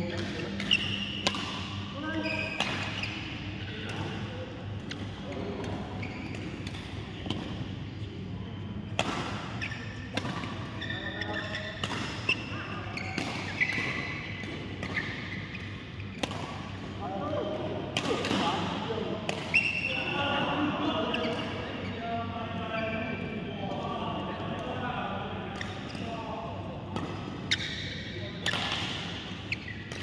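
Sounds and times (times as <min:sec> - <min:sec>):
racket striking shuttlecock: 0:00.2 - 0:01.8, 0:16.2 - 0:16.7
shoes squeaking on court: 0:02.1 - 0:04.1, 0:05.2 - 0:06.6, 0:09.5 - 0:16.7, 0:19.5 - 0:20.0, 0:21.1 - 0:22.0, 0:27.4 - 0:28.7, 0:29.4 - 0:30.0.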